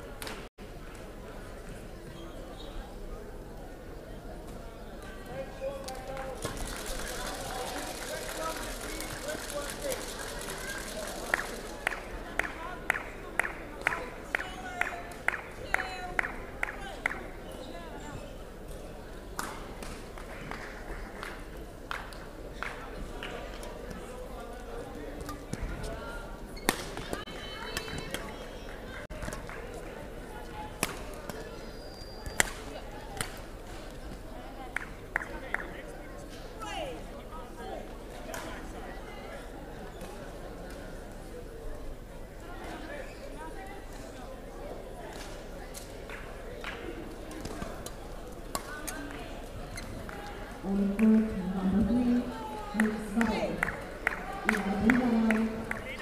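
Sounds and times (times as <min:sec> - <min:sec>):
crowd chatter: 0:00.0 - 0:56.0
murmur of voices: 0:00.0 - 0:56.0
court shoes squeaking: 0:02.0 - 0:02.9, 0:26.5 - 0:27.2, 0:31.5 - 0:32.5
shoe squeak: 0:31.6 - 0:32.4.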